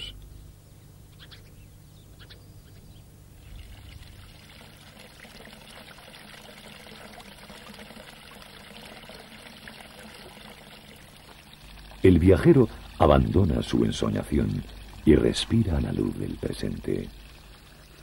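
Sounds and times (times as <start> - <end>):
fountain water splashing into pool: 3.4 - 18.0.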